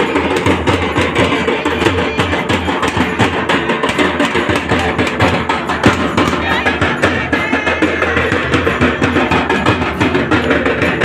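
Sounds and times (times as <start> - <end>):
loud music with fast drumming: 0.0 - 11.0.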